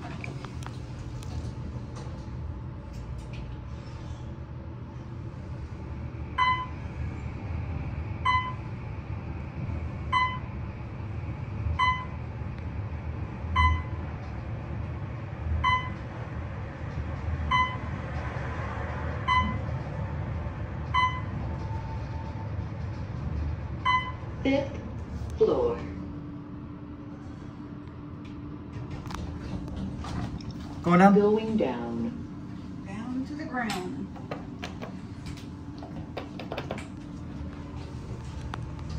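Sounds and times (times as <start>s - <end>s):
elevator low travel rumble: 0.0s - 38.9s
elevator short beeps: 6.4s - 6.8s, 8.2s - 8.7s, 10.1s - 10.5s, 11.7s - 12.2s, 13.5s - 14.0s, 15.6s - 16.0s, 17.5s - 17.9s, 19.2s - 19.7s, 20.9s - 22.5s, 23.8s - 24.3s.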